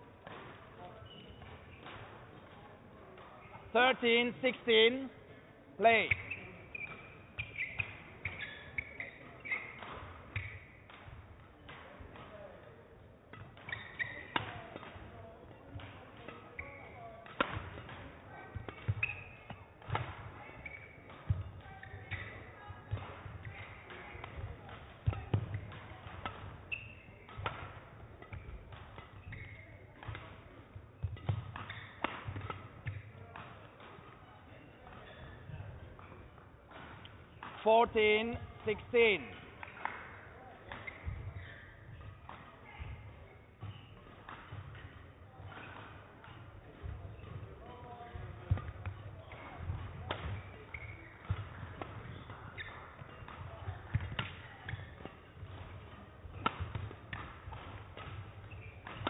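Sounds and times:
shoes squeaking on court: 0.7s - 2.6s, 5.8s - 12.5s, 13.3s - 40.0s, 40.6s - 59.0s
racket hitting shuttlecock: 6.1s - 12.3s, 13.3s - 15.1s, 15.7s - 34.2s, 39.2s - 43.0s, 43.6s - 59.0s.

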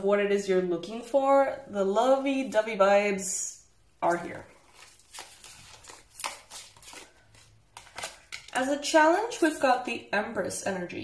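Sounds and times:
cards rustling and tapping: 4.7s - 8.6s.

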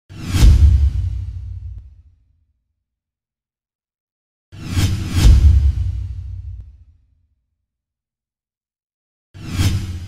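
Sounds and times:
deep low boom: 5.2s - 6.7s.

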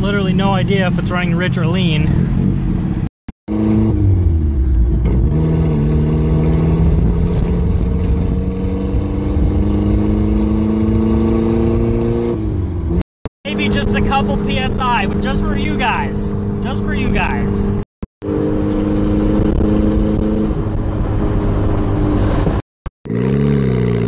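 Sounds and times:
car engine revving: 0.3s - 24.0s.

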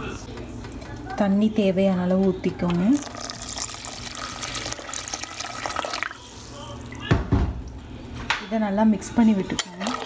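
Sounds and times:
water pouring into a pot: 3.0s - 7.0s.

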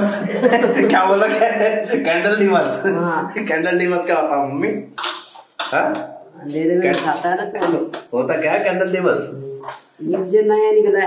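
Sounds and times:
people talking: 5.6s - 11.0s.

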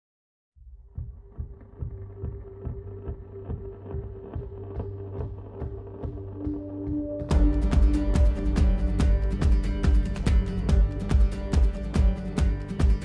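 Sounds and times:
pop song with steady beat: 3.4s - 13.0s.

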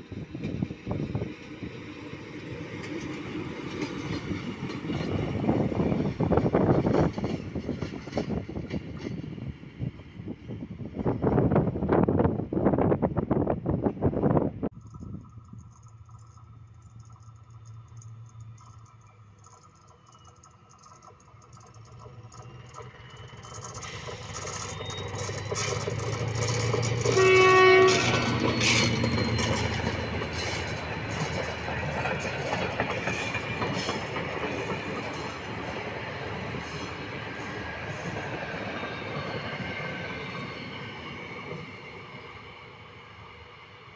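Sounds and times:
diesel locomotive engine: 0.0s - 43.9s
wind on microphone: 4.9s - 15.6s
wagons clattering over rail joints: 14.8s - 38.3s
locomotive horn blast: 27.1s - 28.4s.

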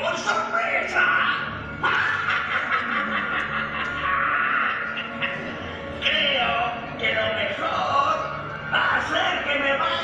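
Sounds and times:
crowd laughing: 1.8s - 6.0s.

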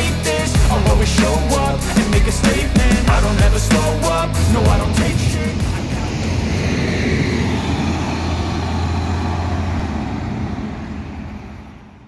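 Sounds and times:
bus engine pulling away: 0.6s - 12.0s.

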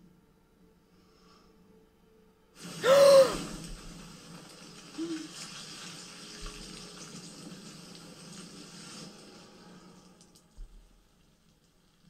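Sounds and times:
sudden hiss: 2.6s - 6.2s
person gasping in shock: 2.8s - 3.5s.

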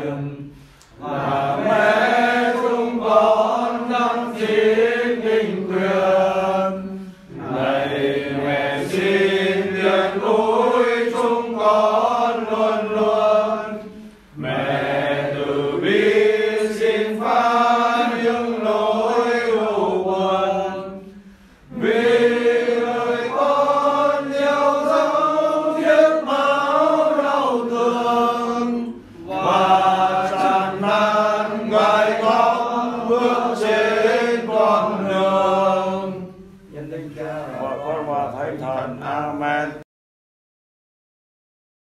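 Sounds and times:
slow sung prayer chant: 0.0s - 39.8s.

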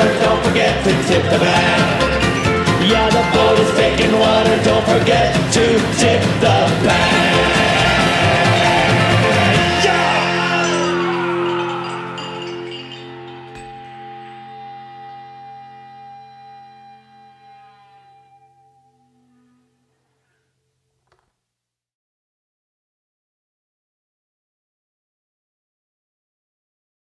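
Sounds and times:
honky-tonk band playing: 0.0s - 12.7s
held chord ringing: 7.1s - 20.0s.

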